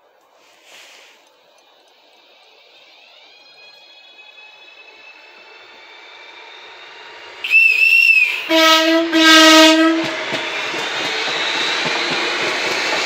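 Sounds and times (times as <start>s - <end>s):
electric train traction whine: 0.0s - 13.0s
rail noise: 0.0s - 13.0s.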